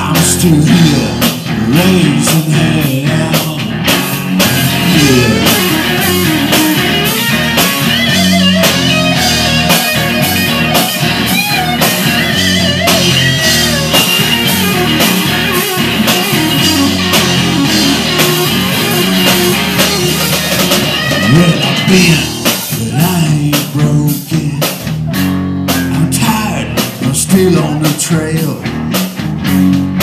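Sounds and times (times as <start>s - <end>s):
bass guitar: 0.0s - 30.0s
electric guitar bent notes: 0.0s - 30.0s
steady drum beat: 0.0s - 30.0s.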